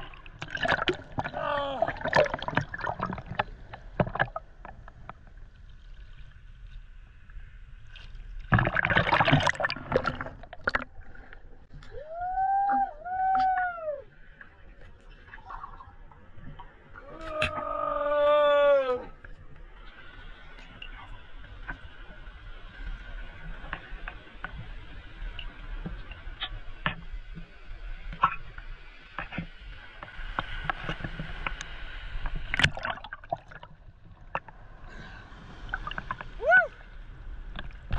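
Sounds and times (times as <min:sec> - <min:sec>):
seawater sloshing and gurgling: 0:00.0 - 0:06.4, 0:07.8 - 0:12.0, 0:30.5 - 0:37.9.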